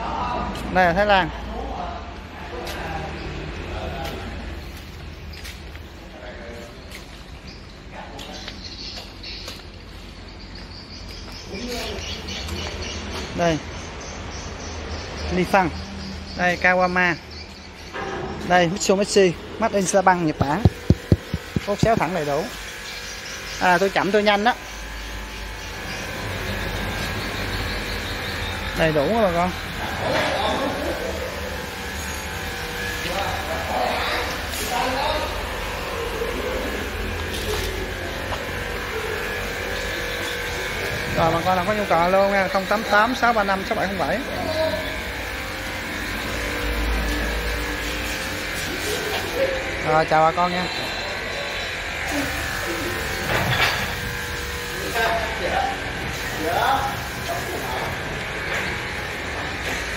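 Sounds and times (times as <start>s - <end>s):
low buzzing hum: 17.2s - 59.9s.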